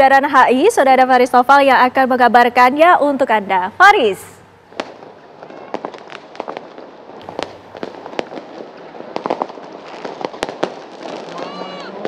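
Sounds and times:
firecrackers and fireworks banging: 0:03.9 - 0:12.0
large crowd noise: 0:11.1 - 0:12.0.

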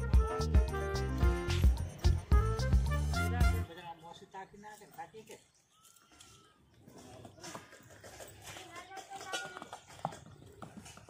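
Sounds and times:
hoofbeats on packed dirt: 0:06.8 - 0:11.0.

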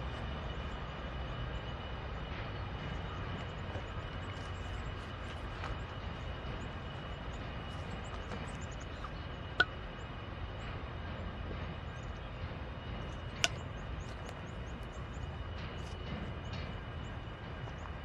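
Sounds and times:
diesel locomotive engine rumble: 0:00.0 - 0:18.0.

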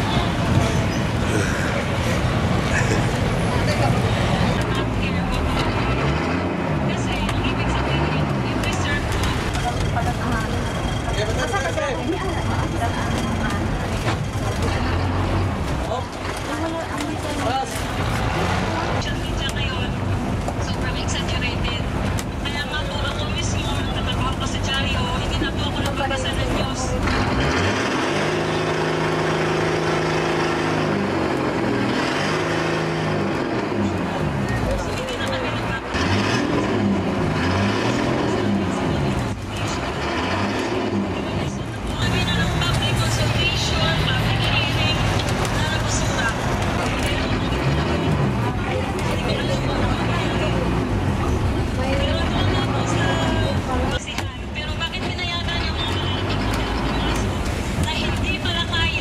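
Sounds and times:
people talking: 0:00.0 - 0:30.4, 0:33.4 - 0:59.0.

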